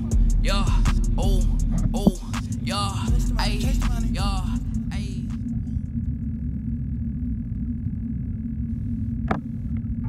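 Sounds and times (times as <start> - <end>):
muffled underwater rumble: 0.0 - 10.0.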